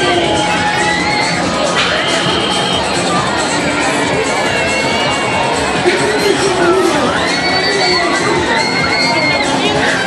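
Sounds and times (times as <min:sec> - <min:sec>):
riders screaming and shouting: 0:00.0 - 0:05.9, 0:06.8 - 0:10.0.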